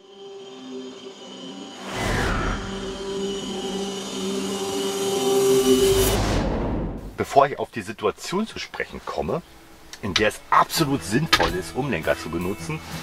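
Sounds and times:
intro music with held tones: 0.0 - 7.2.

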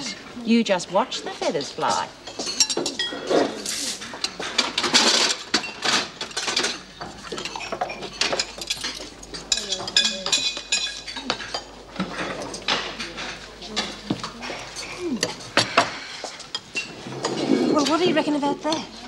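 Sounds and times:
dishes and cutlery clinking: 1.0 - 19.0.

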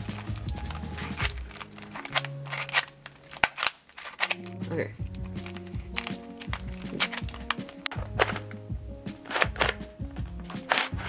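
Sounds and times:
plastic puzzle cube clicking: 0.1 - 11.0.

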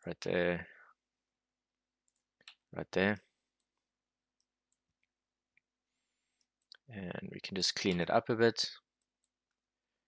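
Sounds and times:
computer mouse clicks: 2.0 - 2.6.

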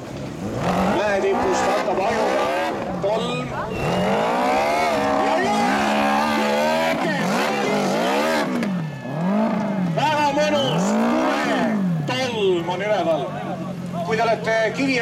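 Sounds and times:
motorcycle engine revving: 0.0 - 12.7.

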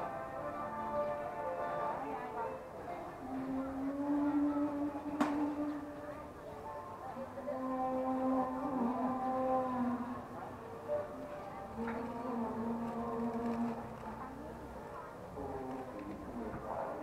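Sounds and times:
faint street background: 0.0 - 17.0
person singing long notes: 3.2 - 6.2, 7.4 - 10.5, 11.6 - 14.2.

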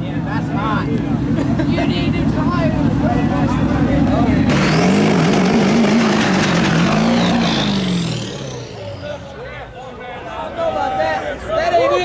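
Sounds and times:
truck engine revving hard: 1.2 - 9.4
spinning tyres hissing: 2.7 - 9.4.

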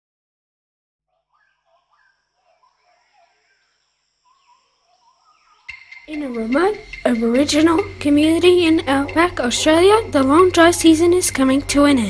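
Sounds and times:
bird calls chirping: 1.3 - 12.0
high insect drone: 1.9 - 12.0.

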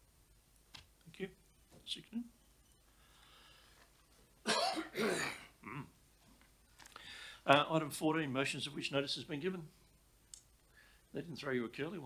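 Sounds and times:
person coughing: 4.4 - 5.9.

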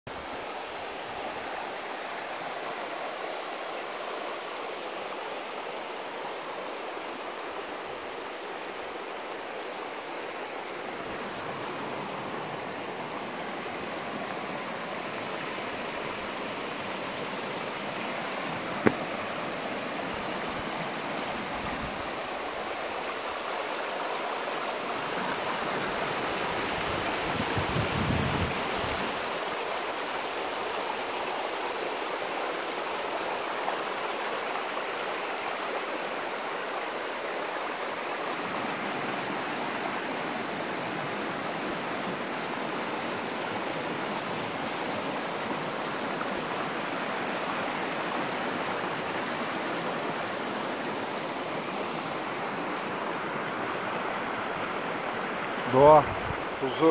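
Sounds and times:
stream rushing over rocks: 0.1 - 56.9.

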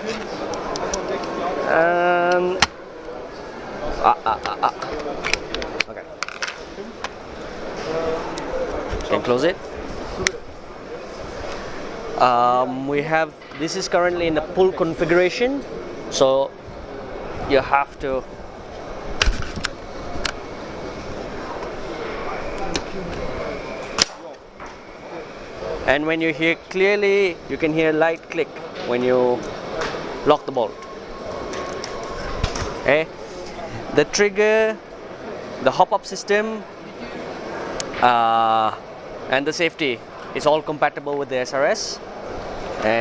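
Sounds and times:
murmur of background voices: 0.0 - 43.0.

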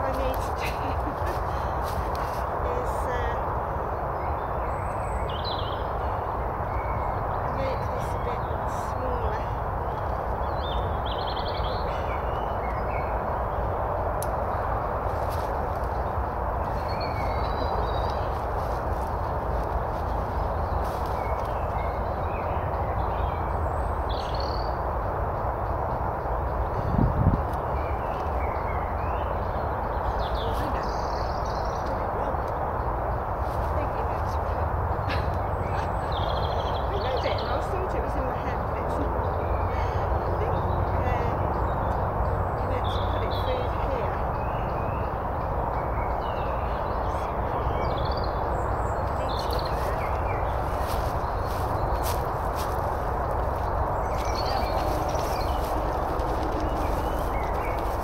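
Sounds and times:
small birds chirping: 0.0 - 58.0
steady rushing noise: 44.0 - 58.0.

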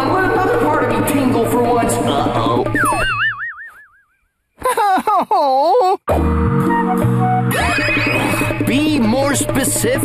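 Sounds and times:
cartoon boing: 2.4 - 4.2, 7.5 - 8.6.

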